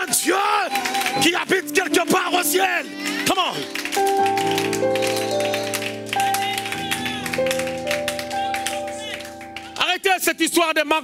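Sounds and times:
organ-style keyboard chords: 0.0s - 11.0s
quick tapping or clapping: 3.3s - 9.8s.

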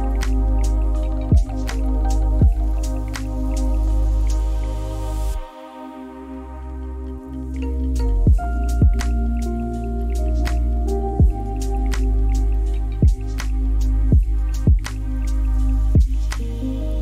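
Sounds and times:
lofi hip-hop music: 0.0s - 17.0s.

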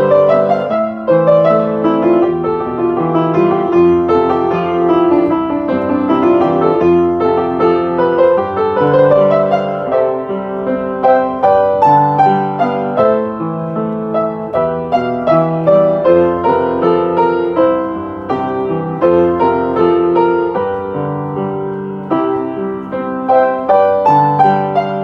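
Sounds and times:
upright piano playing: 0.0s - 25.0s.

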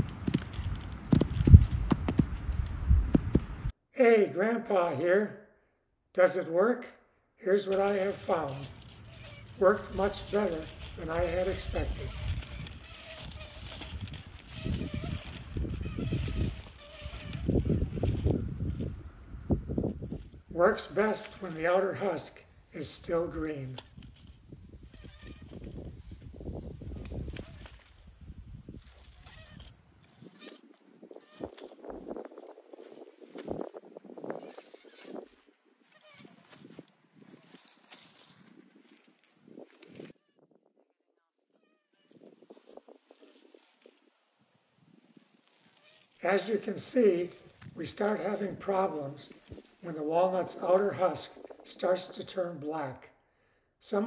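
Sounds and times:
wire cage rolling through grass: 0.0s - 2.6s, 7.7s - 19.0s, 19.7s - 22.1s, 22.8s - 40.2s, 42.1s - 48.6s.

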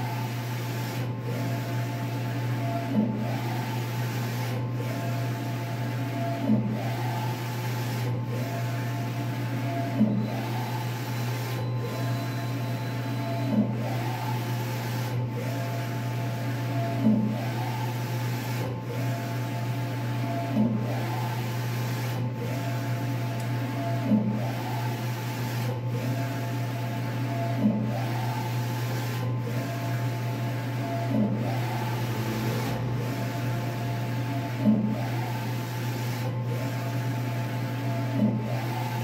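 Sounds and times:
printer carriage motor whine: 0.0s - 39.0s
steady low hum: 30.5s - 35.6s.

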